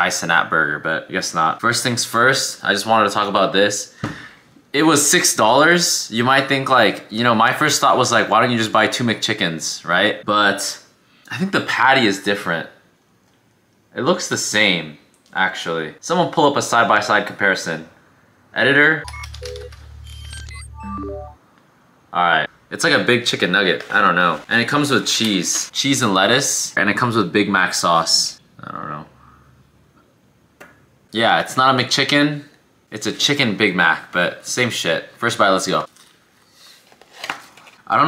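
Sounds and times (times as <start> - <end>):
short synth beeps: 19.0 - 21.4
low buzzing synth drone: 19.2 - 21.4.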